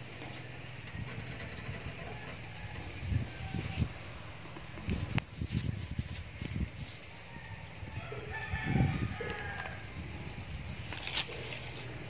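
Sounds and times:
rooster crowing: 7.0s - 10.0s.

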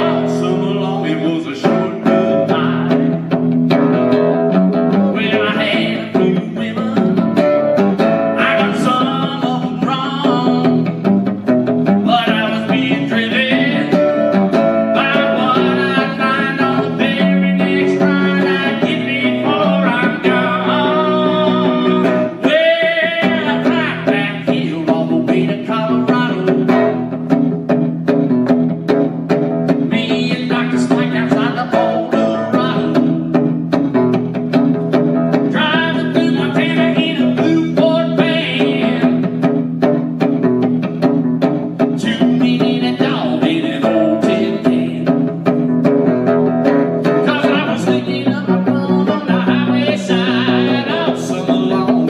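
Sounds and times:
man singing: 0.0s - 3.4s, 4.9s - 11.1s, 11.8s - 27.4s, 29.8s - 34.1s, 35.3s - 39.5s, 41.7s - 45.7s, 47.0s - 52.0s
guitar playing: 0.0s - 52.0s.

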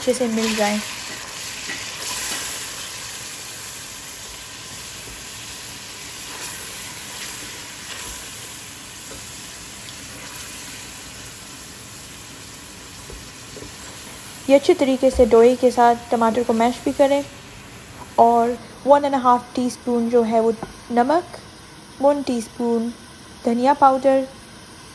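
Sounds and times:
food sizzling in hot oil: 0.0s - 24.9s.

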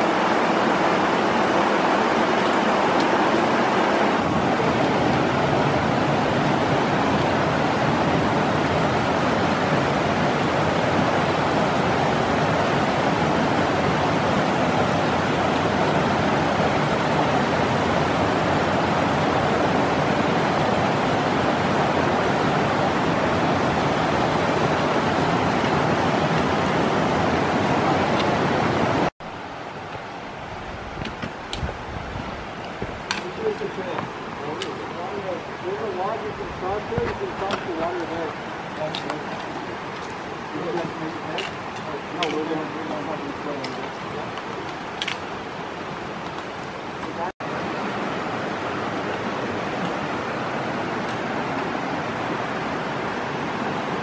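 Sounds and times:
creek water rushing over rocks: 0.0s - 54.0s.

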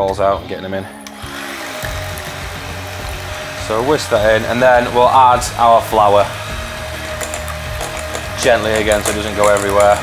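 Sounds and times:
electric hand mixer whisking: 1.0s - 10.0s.

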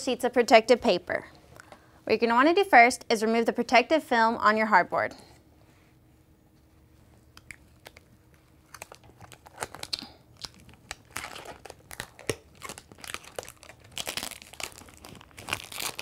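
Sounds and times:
plastic film crackling: 8.6s - 16.0s.

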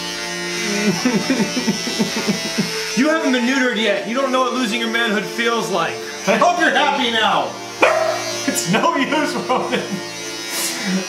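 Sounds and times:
electric beard trimmer cutting: 0.0s - 11.0s.

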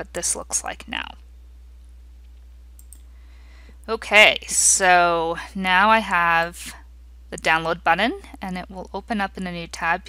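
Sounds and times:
low hum of room tone: 0.0s - 10.0s
computer mouse clicks: 2.2s - 3.1s.

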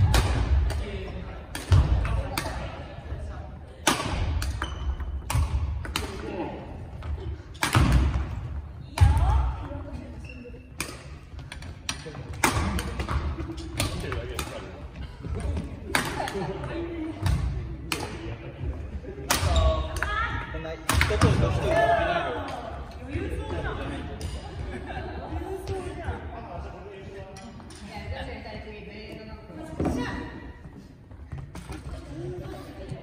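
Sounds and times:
rackets hitting shuttlecocks: 0.0s - 2.9s, 3.8s - 10.0s, 10.7s - 18.3s, 20.8s - 21.8s.

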